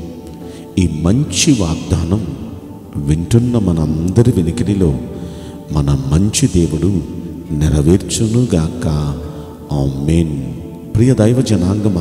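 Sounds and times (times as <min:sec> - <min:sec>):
background music: 0:00.0 - 0:12.0
man talking: 0:00.0 - 0:12.0.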